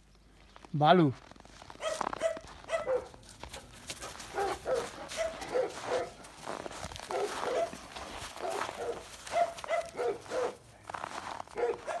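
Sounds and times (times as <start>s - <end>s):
footsteps crunching on snow: 0.3s - 12.0s
dog barking: 1.8s - 3.2s, 4.3s - 6.2s, 7.1s - 10.6s, 11.5s - 12.0s.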